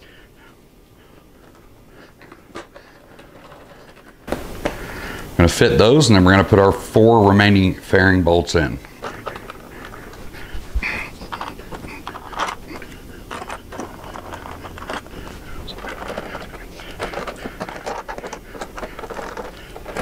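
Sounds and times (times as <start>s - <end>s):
clicks taps and scrapes of bolts: 1.4s - 4.8s, 8.8s - 10.5s, 11.2s - 20.0s.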